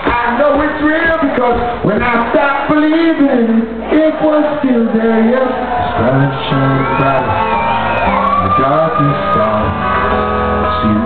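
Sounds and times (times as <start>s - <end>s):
high drawn-out shout: 5.0s - 10.2s
live band playing: 5.6s - 11.0s
person singing: 8.3s - 11.0s.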